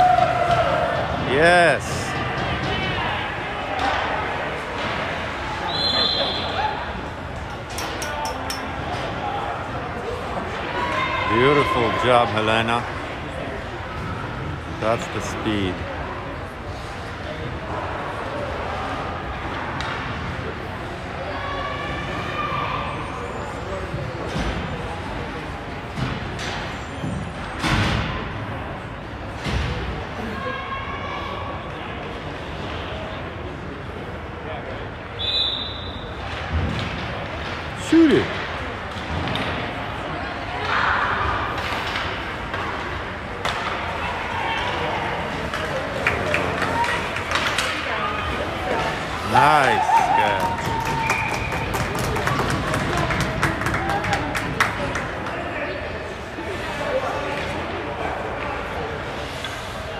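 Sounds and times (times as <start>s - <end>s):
distant shouts: 49.1s - 51.7s.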